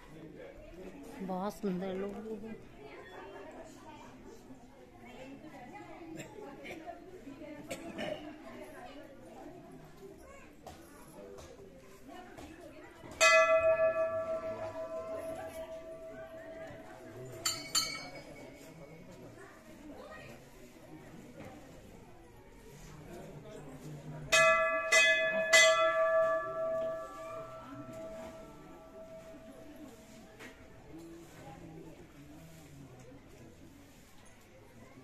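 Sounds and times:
temple bell ringing: 13.2 - 18.6, 24.3 - 29.9.

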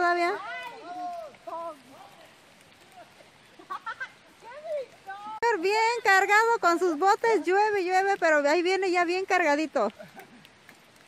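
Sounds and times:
light rain hiss: 0.0 - 11.0.

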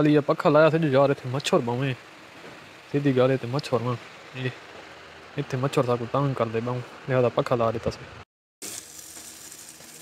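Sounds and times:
man speaking: 0.0 - 2.0, 2.9 - 4.6, 5.4 - 8.2.

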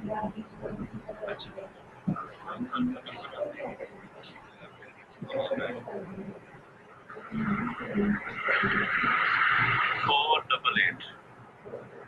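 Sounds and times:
person speaking: 0.0 - 4.4, 7.1 - 11.1.

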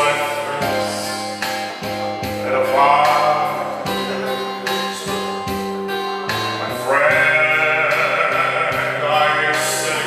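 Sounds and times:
electronic keyboard accompaniment: 0.0 - 10.0
man singing with vibrato: 0.0 - 10.0.

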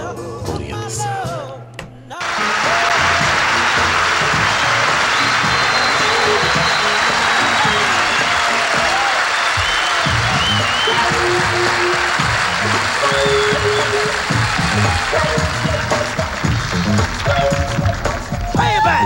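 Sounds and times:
audience applauding and cheering: 2.2 - 19.0
band playing: 2.2 - 19.0.

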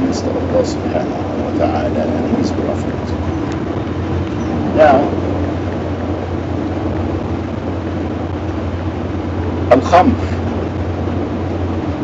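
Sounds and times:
vehicle cabin drone in motion: 0.0 - 12.0.

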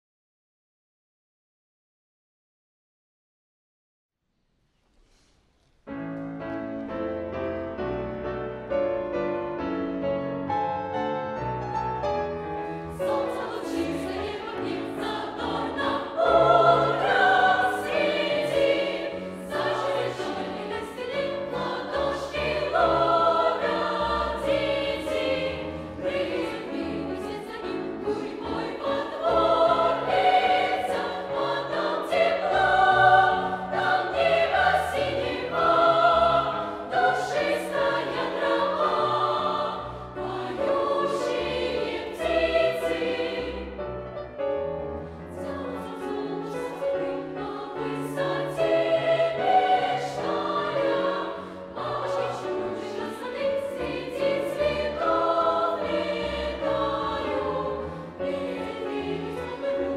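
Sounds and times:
piano accompaniment: 5.8 - 59.9
youth choir singing: 12.9 - 43.8, 45.3 - 59.9.

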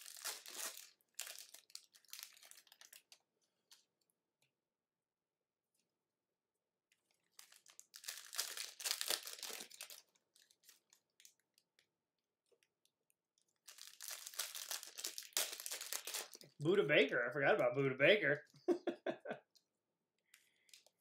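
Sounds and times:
foil wrappers crinkling and tearing: 0.0 - 3.9, 7.1 - 11.8, 13.5 - 16.6.

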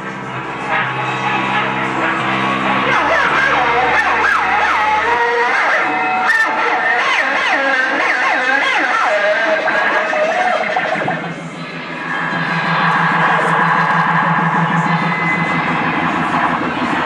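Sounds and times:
sliding bending high notes: 0.0 - 17.0.

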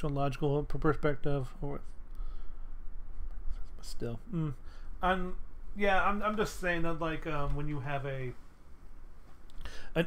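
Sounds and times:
steady low hum: 0.0 - 10.0
faint scratchy noise: 2.8 - 10.0
man speaking: 3.8 - 8.4.

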